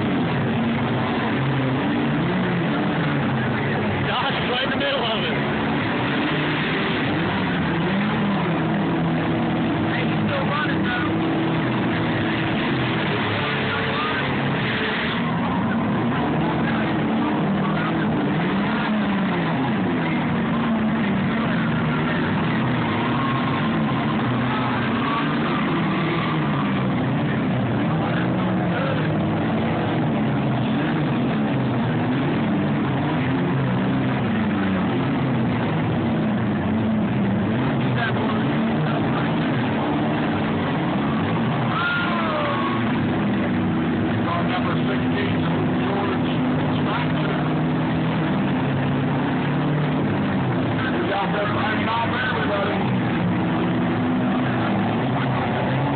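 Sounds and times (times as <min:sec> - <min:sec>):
car engines revving: 0:00.0 - 0:55.9.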